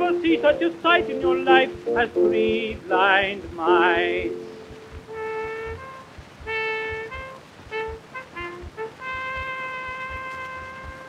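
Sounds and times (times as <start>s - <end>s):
wind instrument playing: 0.0s - 3.0s, 3.6s - 11.0s
record surface crackle: 0.0s - 11.0s.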